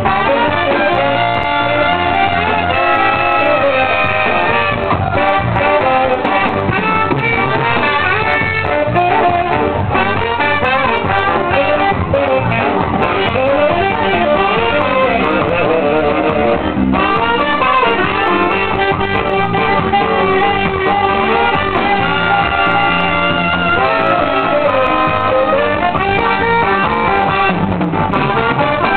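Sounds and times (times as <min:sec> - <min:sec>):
drums: 0:00.0 - 0:28.9
horn section playing: 0:00.0 - 0:28.9.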